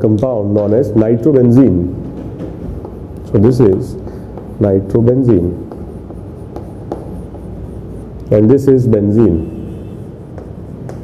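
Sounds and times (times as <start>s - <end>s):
low background hum: 0.0s - 11.0s
chalk scratching on chalkboard: 1.7s - 11.0s
faint chalk taps: 2.0s - 8.3s, 10.2s - 11.0s.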